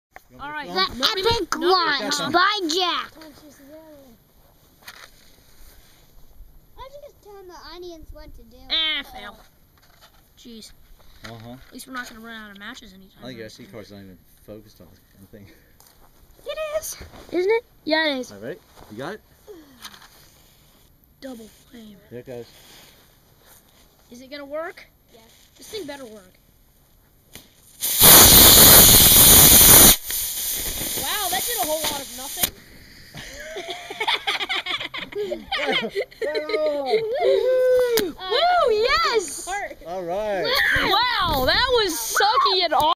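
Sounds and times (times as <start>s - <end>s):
match being struck: 27.3s - 32.6s
rocket motor hissing: 27.7s - 33.1s.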